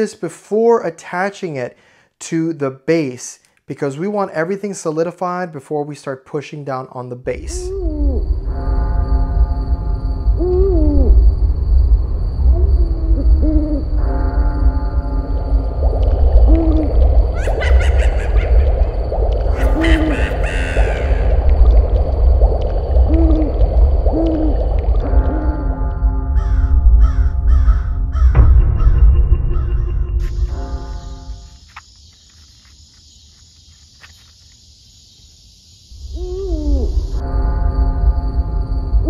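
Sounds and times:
deep rumble: 0:07.4 - 0:31.6
spooky synth music: 0:07.5 - 0:31.7, 0:36.1 - 0:39.0
crow cawing: 0:16.4 - 0:21.6, 0:26.4 - 0:29.8.

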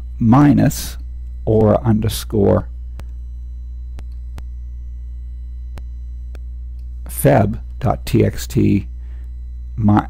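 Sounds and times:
low electrical hum: 0:00.0 - 0:10.0
faint clicks: 0:03.9 - 0:04.5.

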